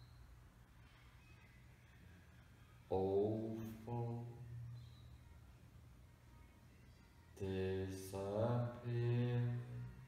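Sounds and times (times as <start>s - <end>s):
man speaking in slow monotone: 2.9s - 4.5s.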